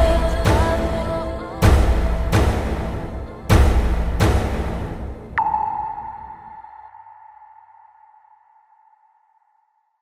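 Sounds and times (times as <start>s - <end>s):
high electronic ping: 5.4s - 9.2s.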